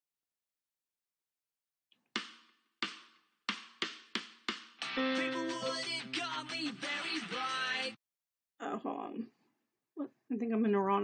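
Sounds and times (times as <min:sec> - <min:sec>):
strummed guitar chords: 0:04.8 - 0:07.9.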